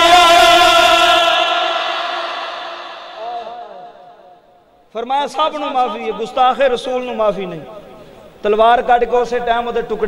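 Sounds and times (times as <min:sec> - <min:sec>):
man's chant-like held cry: 0:00.0 - 0:04.2.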